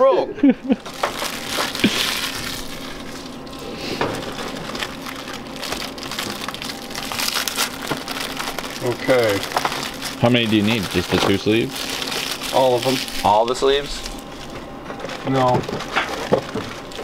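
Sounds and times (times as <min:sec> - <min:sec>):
plastic wrapper crinkling: 0:00.8 - 0:17.0.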